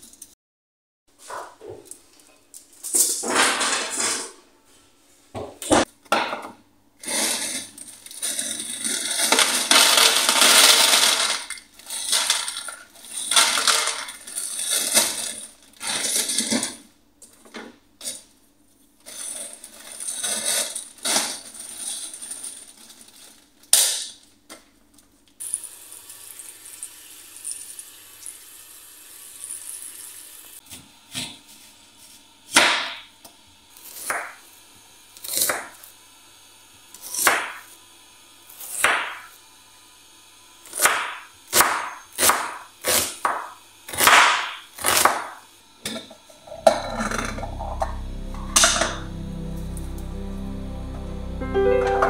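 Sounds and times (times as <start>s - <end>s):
frozen pieces clattering into tray: 7.3s - 16.8s, 19.0s - 24.1s.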